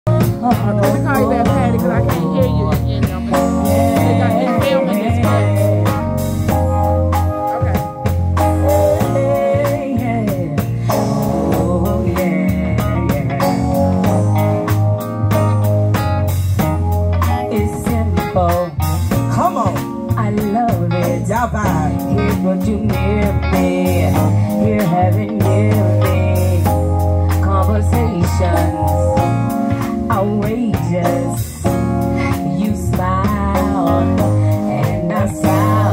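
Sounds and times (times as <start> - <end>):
bass line: 0.0 - 35.9
drum kit: 0.0 - 35.9
electric guitar: 0.1 - 35.9
women singing: 0.2 - 6.2, 8.5 - 13.8, 17.5 - 26.8, 27.4 - 29.2, 32.3 - 35.9.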